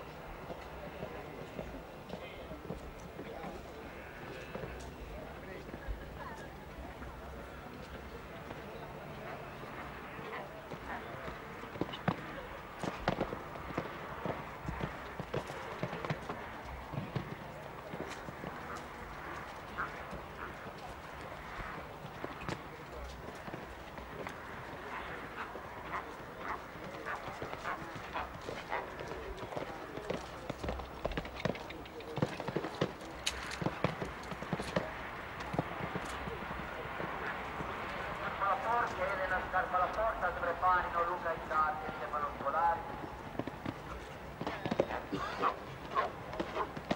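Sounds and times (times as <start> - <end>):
horse hooves cantering on sand: 0.4 - 46.9.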